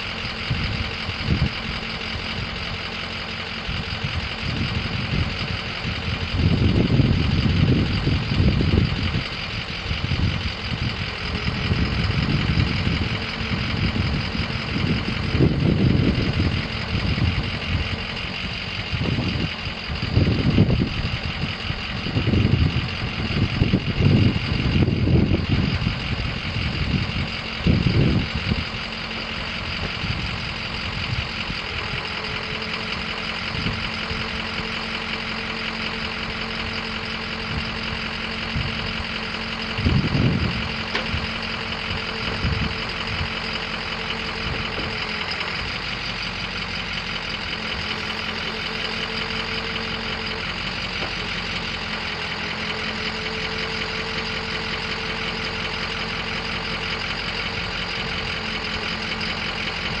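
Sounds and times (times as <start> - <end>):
diesel engine idling with clatter: 0.0 - 60.0.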